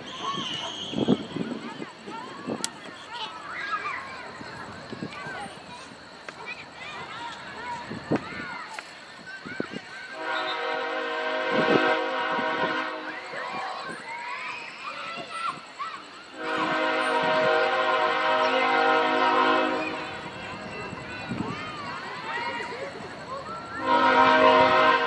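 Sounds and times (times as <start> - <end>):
faint shouted voices: 0.0 - 25.0
horn blasts: 10.2 - 13.1, 16.4 - 20.6, 23.8 - 25.0.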